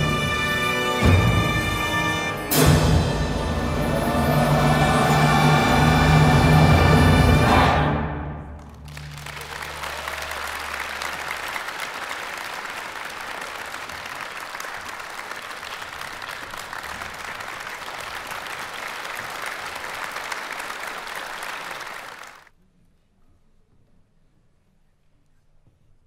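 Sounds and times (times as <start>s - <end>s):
audience applauding: 8.6s - 22.5s.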